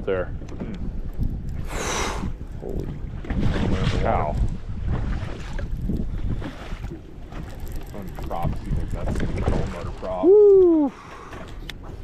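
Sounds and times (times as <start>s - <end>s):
choppy water: 0.0s - 12.0s
wind buffeting microphone: 0.0s - 12.0s.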